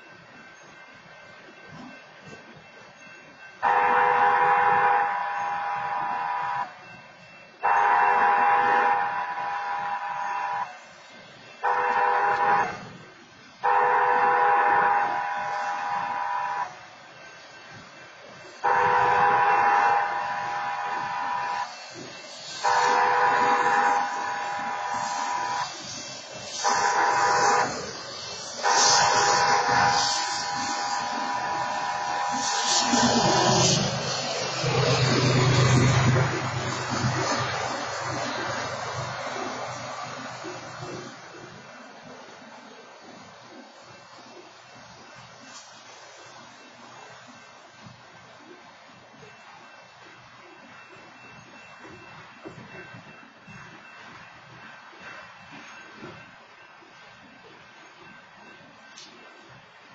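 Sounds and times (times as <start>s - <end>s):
railcars rolling past: 0.0s - 59.9s
train horn: 3.6s - 6.8s, 7.6s - 10.8s, 11.6s - 13.0s, 13.6s - 16.9s, 18.6s - 38.6s.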